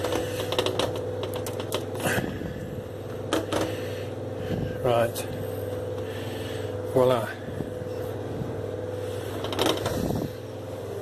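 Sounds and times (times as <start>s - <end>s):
kitchen appliance humming: 0.0s - 11.0s.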